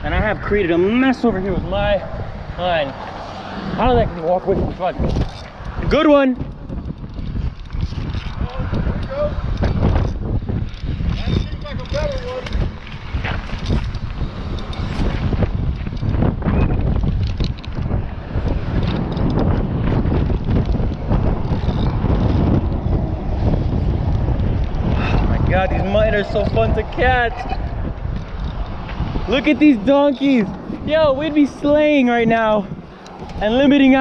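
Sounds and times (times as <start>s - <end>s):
wind buffeting microphone: 0.0s - 34.0s
gear being handled: 4.7s - 16.2s
clicks of spinning reel: 10.7s - 12.9s.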